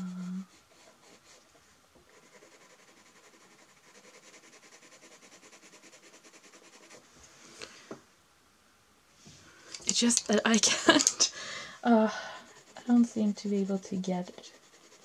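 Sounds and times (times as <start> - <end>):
pencil shading on paper: 0.0 - 1.4, 2.1 - 7.1, 12.4 - 15.0.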